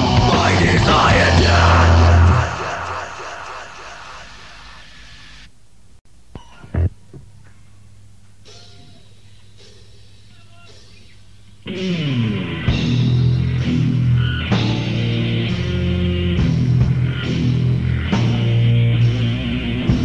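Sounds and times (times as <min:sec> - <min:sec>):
distorted guitars and drums: 0:00.0 - 0:05.5, 0:06.3 - 0:20.0
low tape hum: 0:00.0 - 0:20.0.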